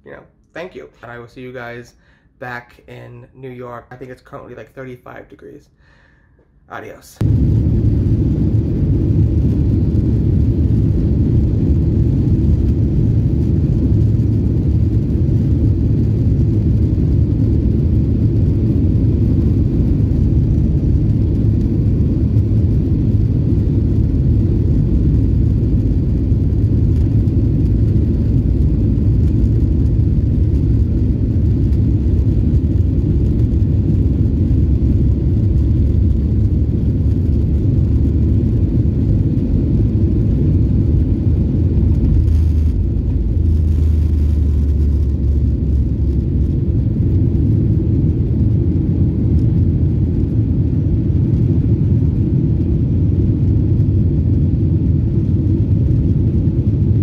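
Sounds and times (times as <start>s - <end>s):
airliner cabin rumble: 6.9s - 57.0s.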